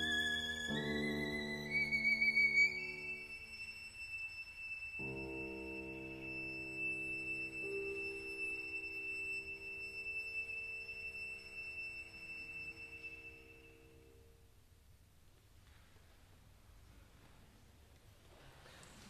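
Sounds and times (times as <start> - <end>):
violin high note: 0.0 - 14.2.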